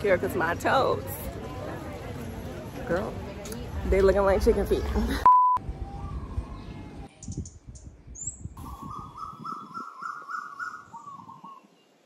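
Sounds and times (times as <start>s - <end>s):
loud steady beep: 5.2s - 5.6s
bird repeated rising notes: 5.6s - 11.8s
birds chirping: 5.7s - 12.0s.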